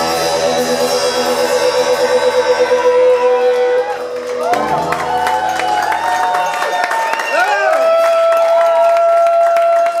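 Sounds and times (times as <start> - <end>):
audience clapping and cheering: 2.7 - 10.0.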